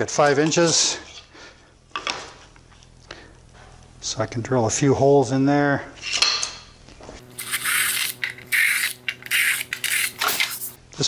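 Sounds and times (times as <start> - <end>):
cordless drill whine: 7.2 - 10.8
drill bit cutting through board: 7.2 - 10.8.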